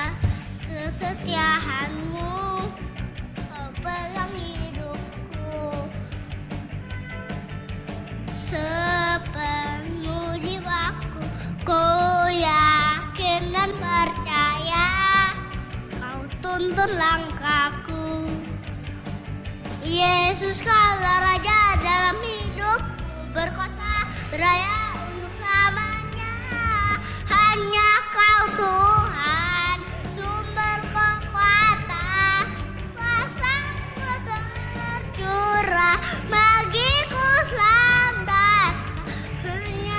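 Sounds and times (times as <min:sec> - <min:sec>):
boy singing into a microphone: 0:00.0 - 0:02.8, 0:03.5 - 0:06.0, 0:08.4 - 0:18.6, 0:19.8 - 0:39.9
accompanying music: 0:00.0 - 0:39.9
recorded backing track: 0:00.0 - 0:39.9.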